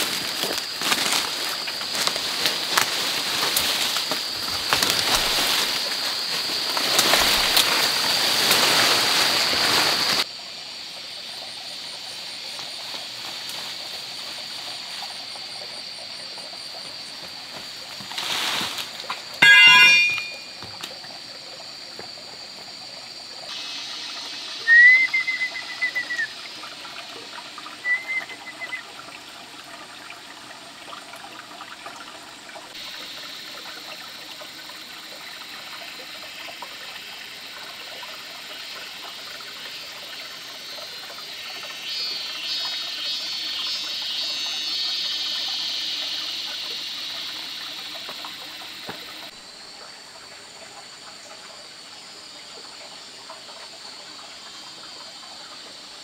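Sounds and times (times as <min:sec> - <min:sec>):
high hiss: 0:00.0 - 0:10.2
stream running over rocks: 0:00.0 - 0:56.0.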